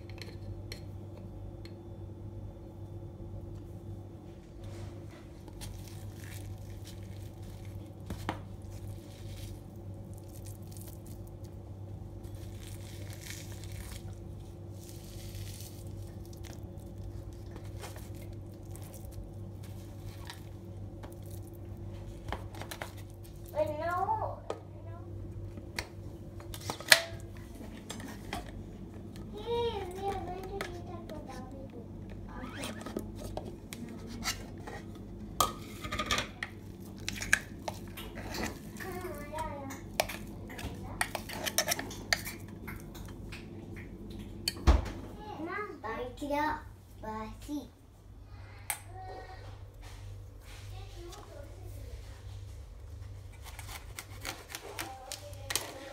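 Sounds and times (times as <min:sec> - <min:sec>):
steady low hum: 0:00.0 - 0:55.9.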